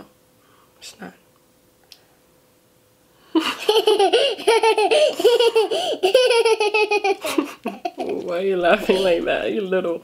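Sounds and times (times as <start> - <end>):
girl laughing hard: 3.4 - 9.3.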